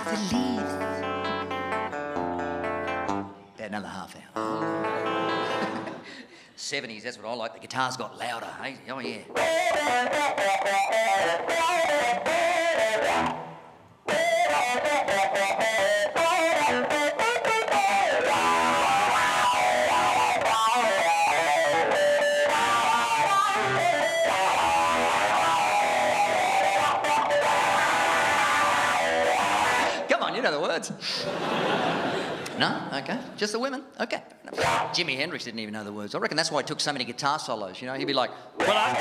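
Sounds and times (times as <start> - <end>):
electric guitar rock lead: 0.0 - 3.4, 4.4 - 6.1, 9.3 - 30.1, 34.5 - 35.0, 38.5 - 39.0
people laughing: 4.6 - 6.4, 31.0 - 32.6, 38.6 - 39.0.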